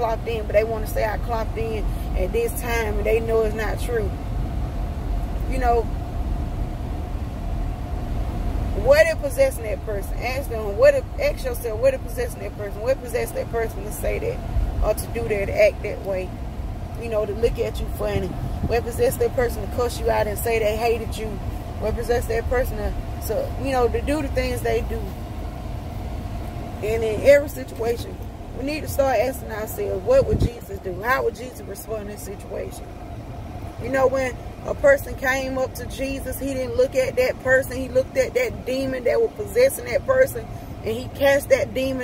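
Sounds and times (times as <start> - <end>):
woman's voice: 0.0 - 4.2, 5.4 - 5.9, 8.8 - 16.4, 17.0 - 25.2, 26.8 - 32.9, 33.8 - 42.0
car engine rumble inside cabin: 0.0 - 42.0
faint steady hum: 0.0 - 42.0.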